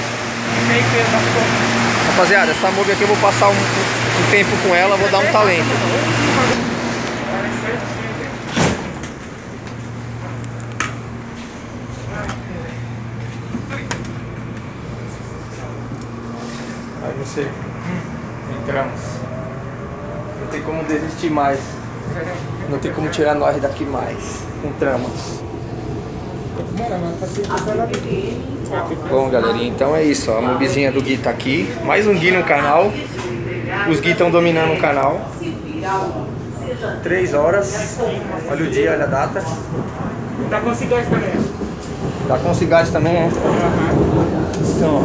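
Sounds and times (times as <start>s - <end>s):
train carriage ventilation hum: 0.0s - 45.0s
man speaking: 0.6s - 8.5s.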